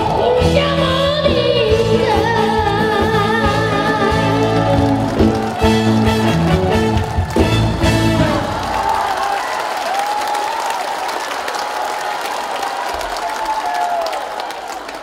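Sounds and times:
live band playing: 0.0s - 9.2s
audience applause: 3.7s - 15.0s.

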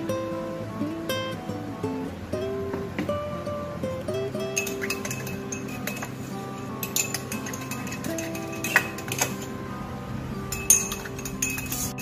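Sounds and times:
guitar background music: 0.0s - 12.0s
spoon clinking against glass: 4.5s - 9.6s, 10.5s - 12.0s.

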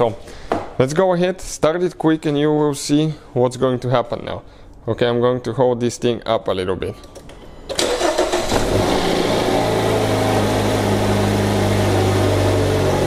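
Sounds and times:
engine cranking and starting: 7.7s - 10.9s
car engine idling: 8.0s - 13.0s.

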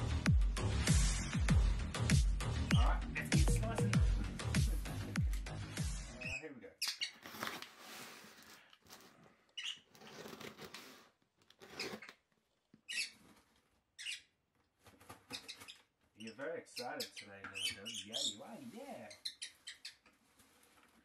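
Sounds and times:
music with heavy beat: 0.0s - 6.2s
cardboard parcel scrapes and rustles: 7.2s - 9.2s, 9.9s - 12.1s.

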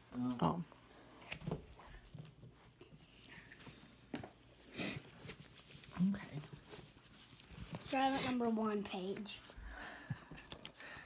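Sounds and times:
books rustling and tapping: 0.2s - 10.8s.

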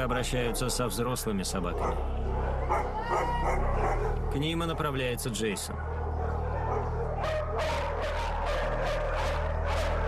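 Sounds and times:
dogs barking: 0.0s - 10.0s.

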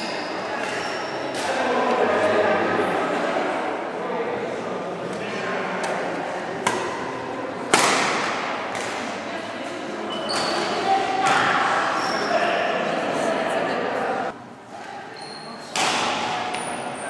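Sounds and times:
badminton rackets striking shuttlecock: 7.7s - 9.2s.

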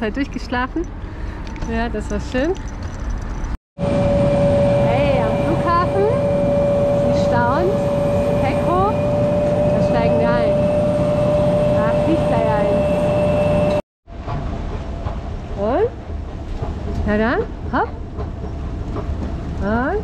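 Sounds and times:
jet engine whine and rumble: 3.8s - 19.9s.

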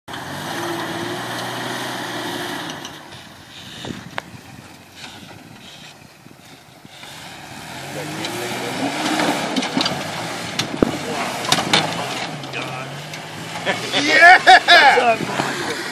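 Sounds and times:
engine revving: 0.1s - 4.0s, 6.9s - 15.9s.

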